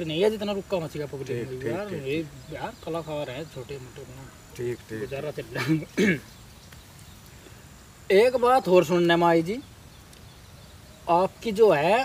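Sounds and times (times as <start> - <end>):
men talking quietly: 0.0 - 7.3, 7.9 - 10.2, 10.9 - 12.0.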